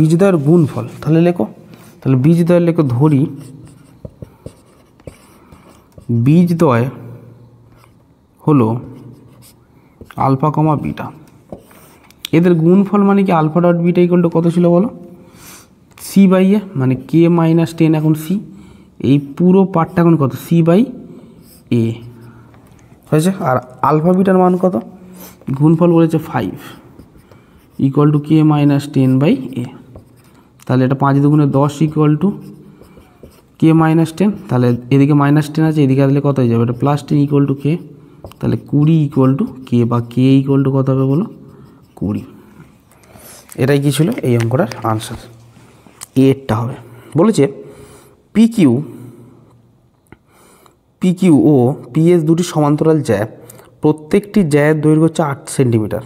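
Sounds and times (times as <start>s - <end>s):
man talking: 0.0s - 3.6s, 6.0s - 7.1s, 16.0s - 22.3s, 23.1s - 26.9s, 27.7s - 30.0s, 30.6s - 32.6s, 33.6s - 42.4s, 43.5s - 45.4s, 46.1s - 47.7s
marker scratching on whiteboard: 2.7s - 6.6s, 8.7s - 10.4s, 11.5s - 12.2s, 21.2s - 45.3s
marker tip tapping board: 3.9s - 5.2s, 38.2s - 38.4s.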